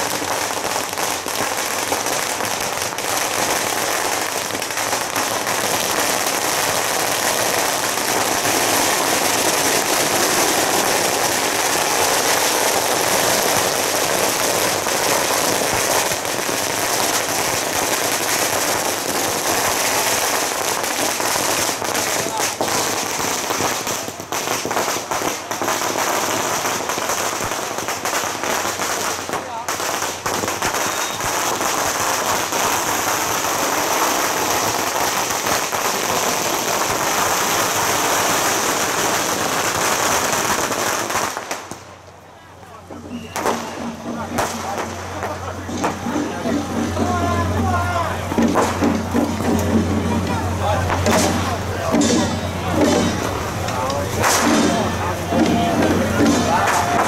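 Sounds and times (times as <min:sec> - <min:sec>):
firecrackers crackling: 0:00.0 - 0:57.0.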